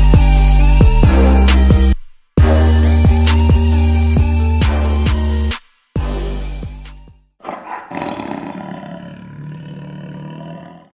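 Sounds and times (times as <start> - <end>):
loud roar: 7.4 - 11.0.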